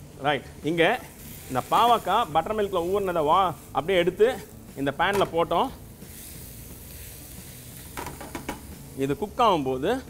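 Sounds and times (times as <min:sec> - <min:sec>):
food sizzling in oil: 0:00.4 - 0:10.0.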